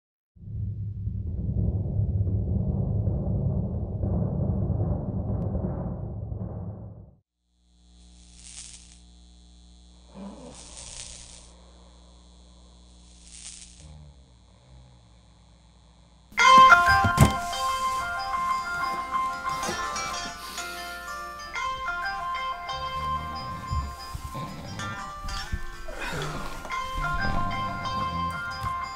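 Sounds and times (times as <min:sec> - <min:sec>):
low rumbling logo stinger: 0:00.4 - 0:07.2
faint steady hum: 0:07.6 - 0:28.9
soft hisses: 0:10.4 - 0:11.6, 0:12.9 - 0:13.8
music with chiming melody: 0:16.4 - 0:28.9.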